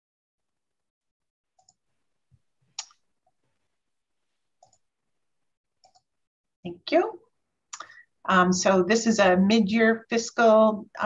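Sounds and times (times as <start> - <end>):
computer mouse clicks: 4.6 - 4.8, 5.8 - 6.1.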